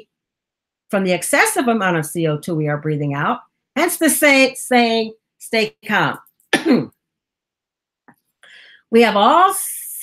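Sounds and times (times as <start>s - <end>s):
woman coughing: 6.5s - 7.0s.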